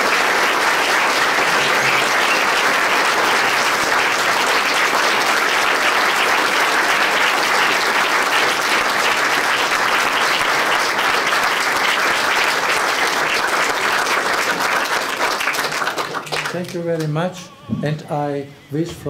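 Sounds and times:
audience clapping: 0.0 - 17.4.

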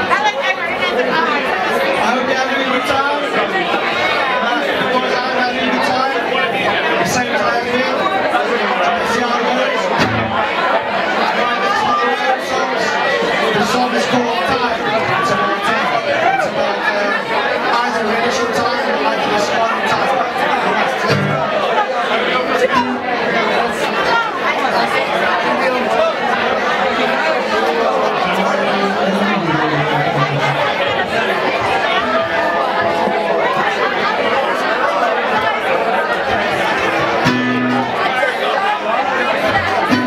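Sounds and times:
crowd chatter: 0.0 - 40.0
low held notes: 28.4 - 33.0.

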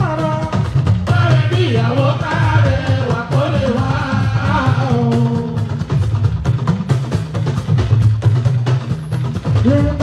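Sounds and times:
lead vocal singing: 0.0 - 5.9, 9.6 - 10.0
bass guitar line: 0.0 - 10.0
rapid drum strikes: 0.0 - 10.0.

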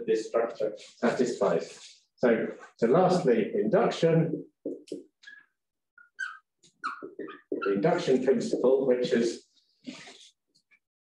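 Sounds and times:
whiteboard marker squeaking: 4.3 - 9.3.

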